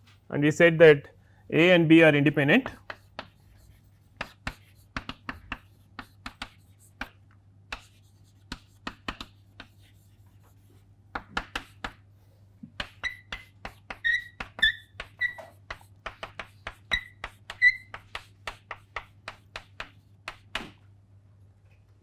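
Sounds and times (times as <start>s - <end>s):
chalk tapping on chalkboard: 2.6s - 20.8s
chalk squeaking: 2.7s - 7.1s, 12.8s - 20.4s.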